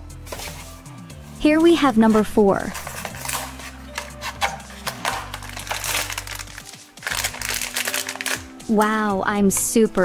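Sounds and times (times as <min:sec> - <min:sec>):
light background music: 0:00.0 - 0:10.0
foil bag crinkling: 0:02.7 - 0:08.5
cardboard box being opened: 0:02.8 - 0:06.4.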